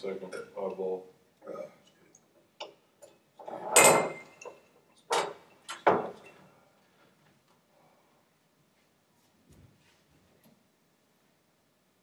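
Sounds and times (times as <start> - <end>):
glasses knocking on a table: 3.7 - 6.4.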